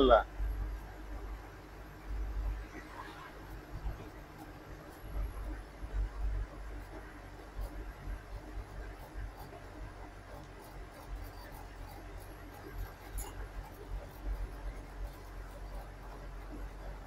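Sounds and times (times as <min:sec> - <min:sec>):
road noise: 0:01.3 - 0:07.2
rattles and ticks: 0:10.2 - 0:17.0.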